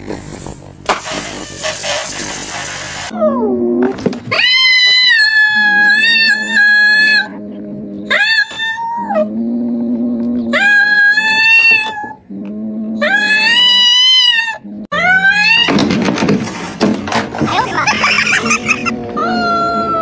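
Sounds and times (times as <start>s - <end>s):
cats yowling: 4.3s - 7.4s, 8.0s - 9.3s, 10.5s - 12.2s, 13.0s - 15.8s, 18.0s - 20.0s.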